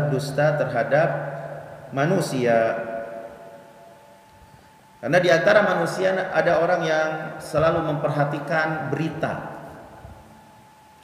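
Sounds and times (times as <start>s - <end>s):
man speaking: 0.0s - 3.2s, 5.0s - 9.7s
faint steady tone: 0.0s - 6.2s, 8.1s - 11.0s.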